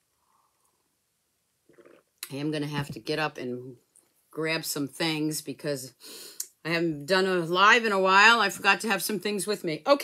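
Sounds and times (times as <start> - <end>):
person sipping coffee: 1.6 - 2.3
soft gulp: 1.6 - 2.3.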